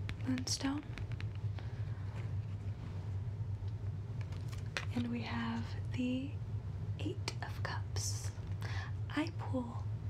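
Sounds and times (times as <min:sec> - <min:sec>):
cards clicking and tapping: 0:00.0 - 0:01.7
low background hum: 0:00.0 - 0:10.0.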